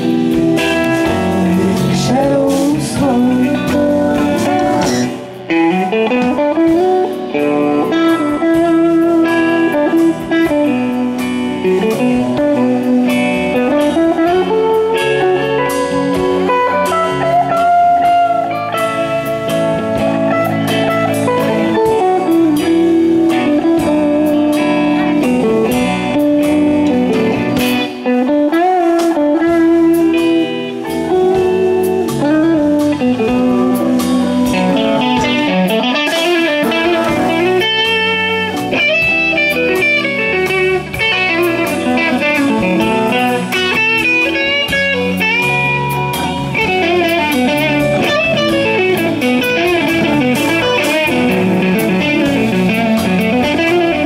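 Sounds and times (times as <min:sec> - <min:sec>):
bass: 0:00.0 - 0:54.0
drums: 0:00.0 - 0:54.0
lead electric guitar bent notes: 0:00.0 - 0:54.0
rhythm guitar: 0:00.0 - 0:54.0.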